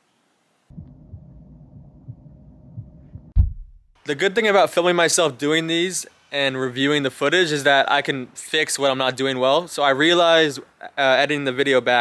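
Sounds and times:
low steady hum: 0.7s - 3.9s
heavy deep thump: 0.7s - 4.0s
soft dull thumps: 0.8s - 3.8s.

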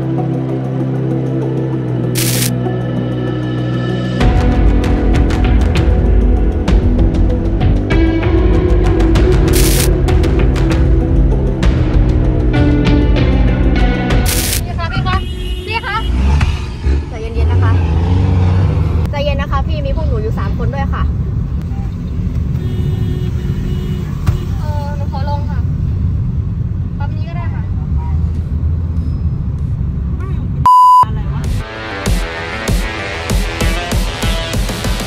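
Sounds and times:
car engine and road rumble: 14.3s - 31.5s
high electronic beep: 30.7s - 31.1s.

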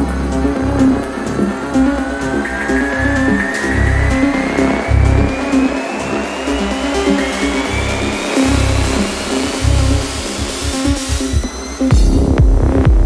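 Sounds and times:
synth sweep rising in pitch: 0.0s - 11.9s
deep bass pulses: 0.0s - 13.0s
electronic dance music: 0.0s - 13.0s.

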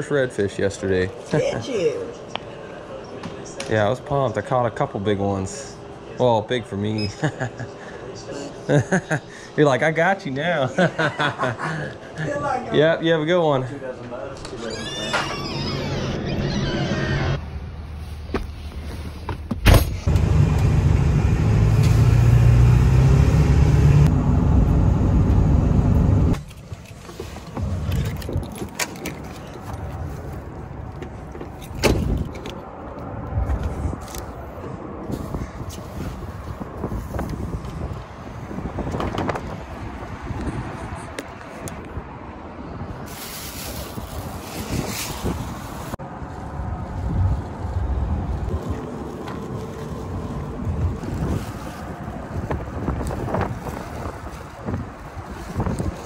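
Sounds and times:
handling knocks and clicks: 26.4s - 30.0s
wind on microphone: 33.1s - 56.0s.

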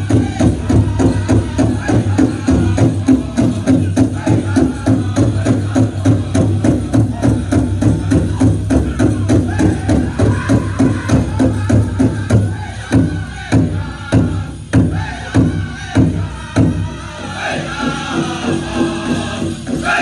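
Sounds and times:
big drum beating: 0.0s - 20.0s
group singing: 0.0s - 20.0s.

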